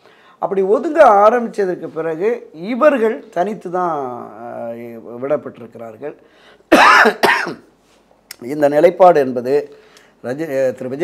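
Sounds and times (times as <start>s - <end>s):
man coughing: 6.7s - 7.7s.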